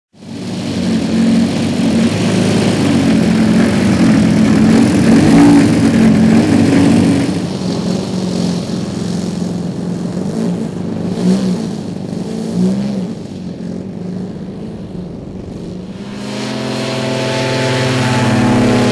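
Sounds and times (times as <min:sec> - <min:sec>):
model aircraft engines running: 0:00.2 - 0:18.9.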